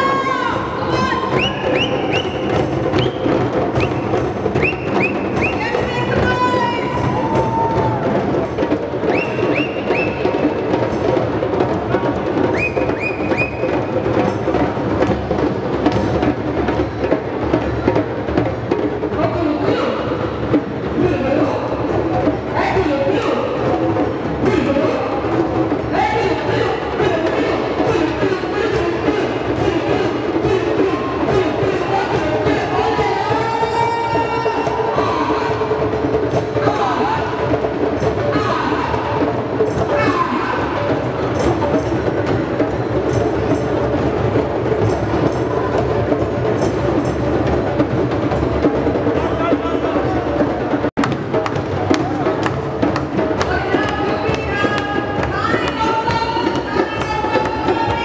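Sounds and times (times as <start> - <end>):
voices calling and singing: 0.0 - 14.2, 21.1 - 43.2, 48.2 - 58.0
hand drums playing: 0.0 - 58.0.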